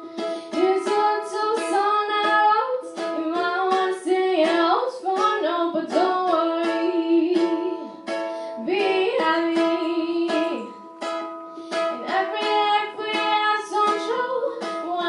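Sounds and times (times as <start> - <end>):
girl singing a pop song: 0.0 - 15.0
ukulele strumming: 0.0 - 15.0.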